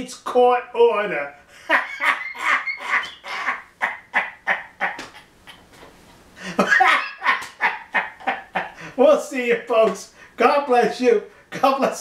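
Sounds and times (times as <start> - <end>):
man laughing hard: 1.6 - 5.8, 6.4 - 9.0.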